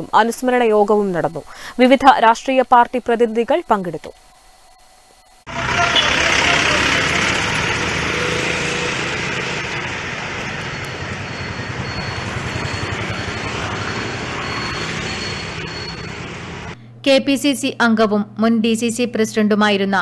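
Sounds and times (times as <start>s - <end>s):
road traffic noise: 5.4s - 16.8s.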